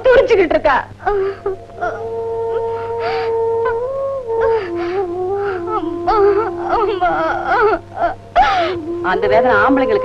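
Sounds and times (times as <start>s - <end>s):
mournful background music: 0.0s - 10.0s
woman crying out and sobbing: 4.4s - 10.0s.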